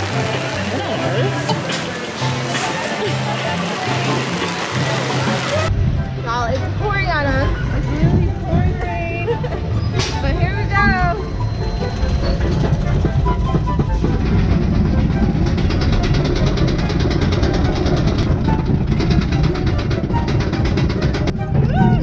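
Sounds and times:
roller coaster rumble: 0.0 - 22.0.

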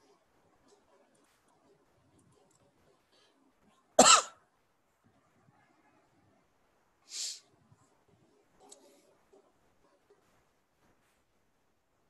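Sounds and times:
person coughing: 4.0 - 4.4.

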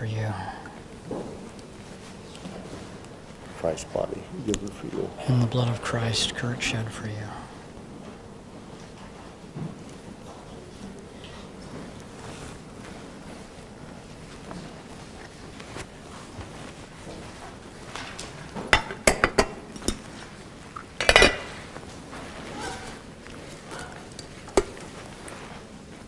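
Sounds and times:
low rumble and hiss: 0.0 - 26.0
small cups clinking on tray: 20.8 - 21.6.

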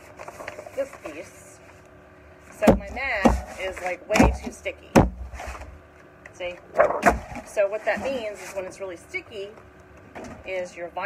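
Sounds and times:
plastic mat rustling: 0.0 - 4.6, 5.2 - 5.8, 6.8 - 9.5.

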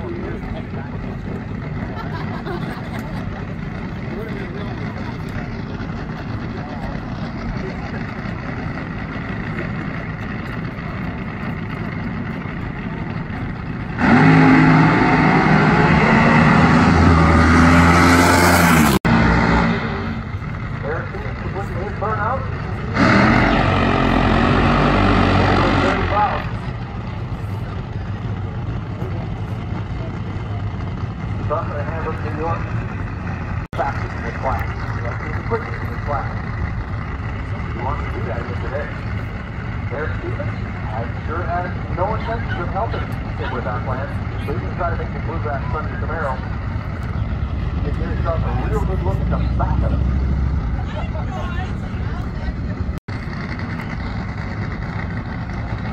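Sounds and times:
spectator chatter: 0.0 - 14.1, 26.0 - 55.9
drag racing car engine accelerating: 0.0 - 55.9.

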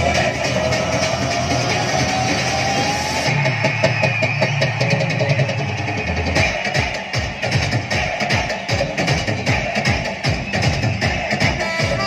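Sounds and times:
heavy bass and steady beat: 0.0 - 12.0
loud dance music: 0.0 - 12.0.

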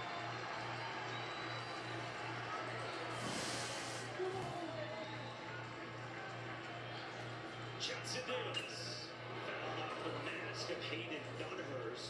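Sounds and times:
ballpark crowd noise: 0.0 - 12.0
brief hiss: 3.2 - 4.2.

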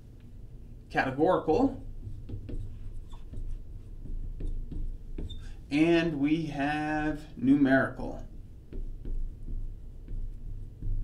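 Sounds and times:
marker writing on glass: 1.5 - 5.9.

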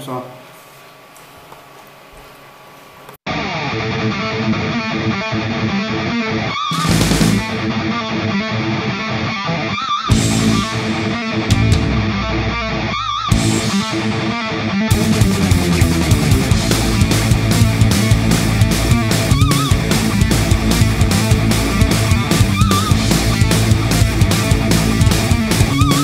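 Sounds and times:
guitar background music: 3.3 - 26.0.

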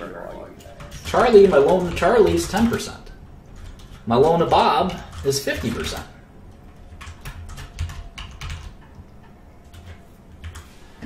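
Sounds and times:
typing on computer keyboard: 0.6 - 10.8.

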